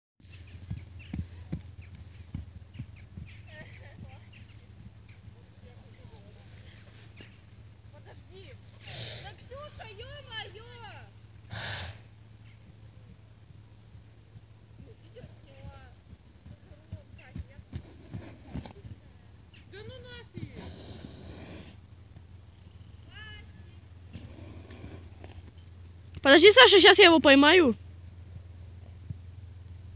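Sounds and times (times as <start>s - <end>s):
horse hooves on snow: 0.2s - 11.1s, 12.5s - 27.0s.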